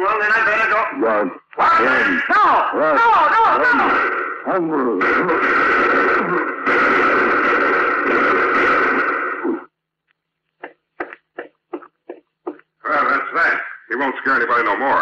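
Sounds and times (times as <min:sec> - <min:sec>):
short sharp gunshots: 0:03.6 - 0:09.6.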